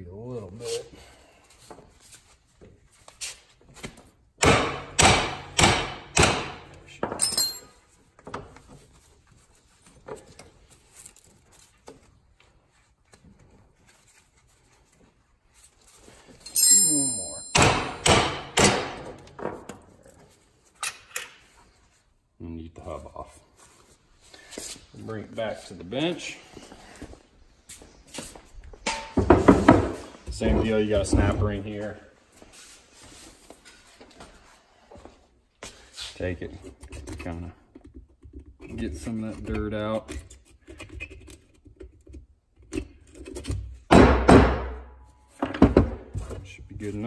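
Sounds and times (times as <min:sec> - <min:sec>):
hammer striking metal parts: 0:04.4 - 0:07.8, 0:16.5 - 0:19.2, 0:28.9 - 0:29.2.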